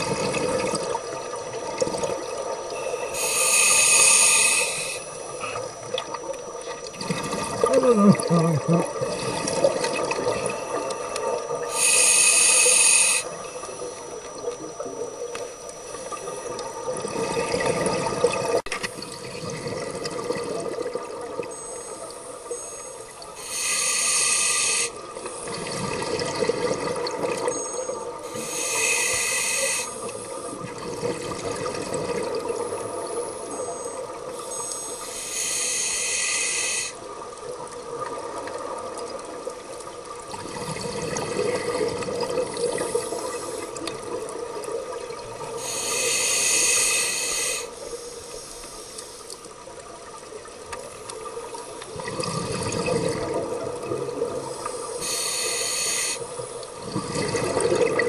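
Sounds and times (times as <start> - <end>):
regulator hiss on inhalation: 2.8 - 5.6, 11.7 - 13.7, 21.6 - 25.6, 27.5 - 30.5, 33.2 - 37.0, 42.8 - 43.8, 45.5 - 49.4, 54.4 - 56.8
bubbling exhalations: 7.0 - 10.5, 51.9 - 54.5, 56.8 - 58.0.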